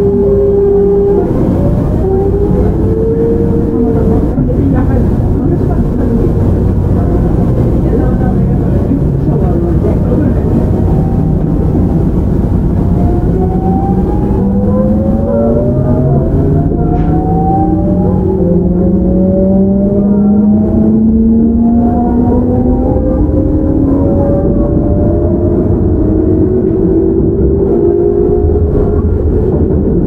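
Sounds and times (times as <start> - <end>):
wheel and rail rumble: 0.0 - 30.0
train motor whine rising: 10.8 - 29.1.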